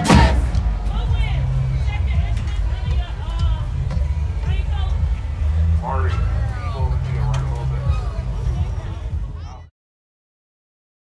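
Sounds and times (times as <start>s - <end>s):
loud voices: 0.0s - 9.7s
marching band sustained notes: 0.0s - 9.7s.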